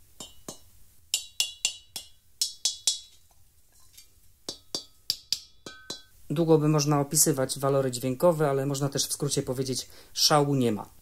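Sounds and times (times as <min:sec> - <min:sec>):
mallets knocking gas cylinder: 0:00.0 - 0:03.2, 0:04.4 - 0:06.2.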